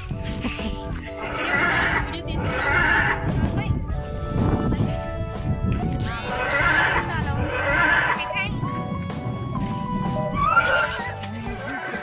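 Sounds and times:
steady music: 0.0s - 12.0s
shrill dinosaur screeches: 10.4s - 11.1s.

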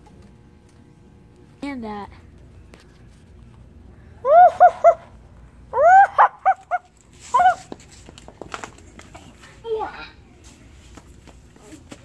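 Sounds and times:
high-pitched dog-like yelps: 4.3s - 5.1s, 5.7s - 7.6s.

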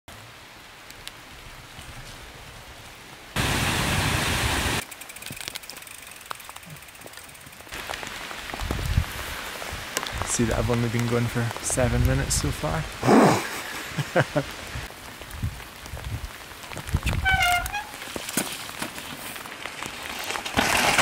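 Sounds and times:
rain hissing in woodland: 0.1s - 21.0s.

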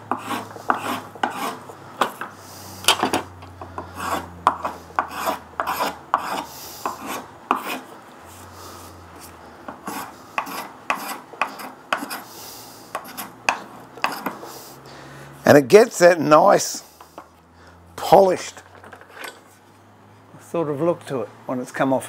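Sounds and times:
spokeshave scraping wood: 0.0s - 14.8s.

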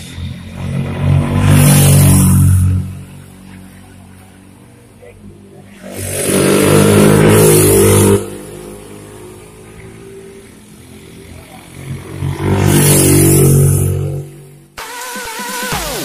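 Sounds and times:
small motorcycle engine revving: 5.7s - 8.8s.

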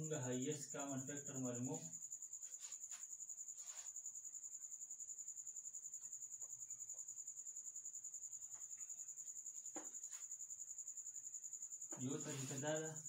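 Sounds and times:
cricket chirping: 0.0s - 13.0s.

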